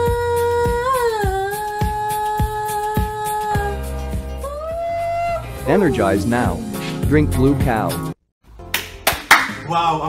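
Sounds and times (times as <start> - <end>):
pop backing track: 0.0 - 10.0.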